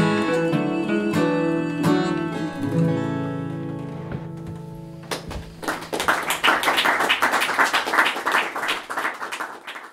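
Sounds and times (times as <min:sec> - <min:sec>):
acoustic guitar chord: 0:00.0 - 0:05.0
audience applauding: 0:05.1 - 0:09.9.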